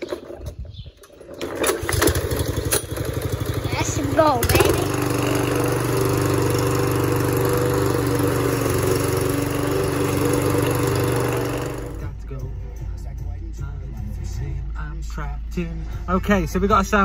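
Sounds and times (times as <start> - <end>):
lawn mower engine running: 0.0 - 12.1
music with man's voice: 11.9 - 17.0.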